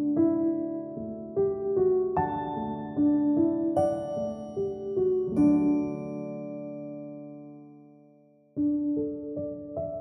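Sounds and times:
soft piano lullaby: 0:00.0 - 0:10.0.

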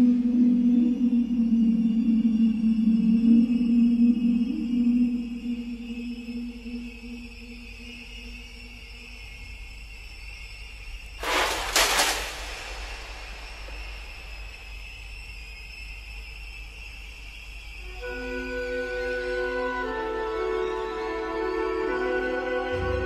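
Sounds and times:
eerie music of held high tones: 0:00.0 - 0:11.2, 0:13.2 - 0:23.0
loud burst of noise: 0:11.2 - 0:15.4.

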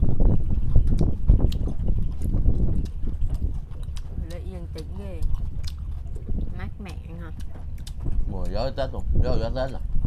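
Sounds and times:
chewing: 0:00.0 - 0:09.8
wind rumbling on microphone: 0:00.0 - 0:10.0.

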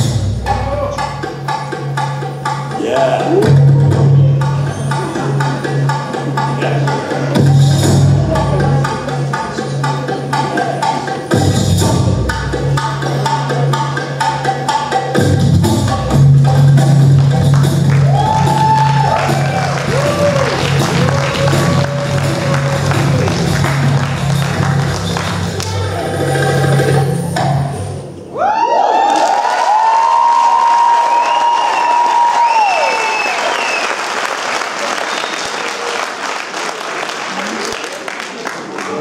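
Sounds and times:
accordion and drum music: 0:00.0 - 0:18.0
audience applauding: 0:17.2 - 0:25.8, 0:28.8 - 0:39.0
cheering calls: 0:18.0 - 0:23.8, 0:28.3 - 0:34.2.

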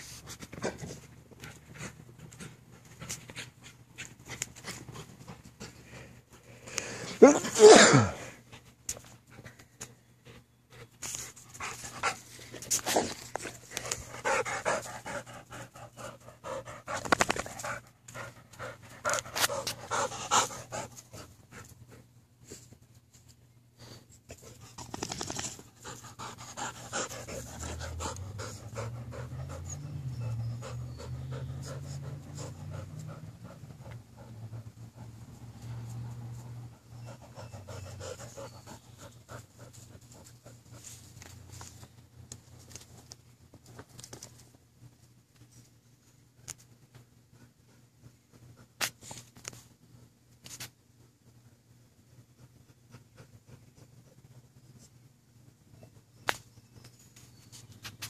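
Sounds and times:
dogs panting: 0:00.2 - 0:07.2, 0:08.6 - 0:22.2, 0:24.3 - 0:35.7, 0:36.4 - 0:41.1.

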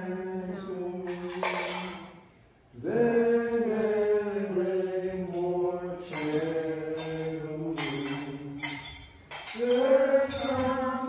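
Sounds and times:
low voice chanting a hymn: 0:00.0 - 0:01.8, 0:02.7 - 0:08.7, 0:09.5 - 0:11.0.

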